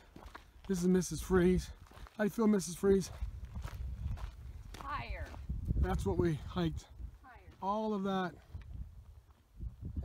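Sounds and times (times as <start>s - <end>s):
footsteps crunching on dirt trail: 0.0s - 10.0s.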